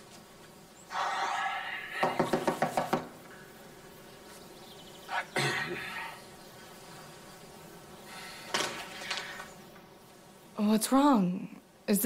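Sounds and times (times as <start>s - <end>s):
fist knocking on glass door: 2.0s - 3.1s.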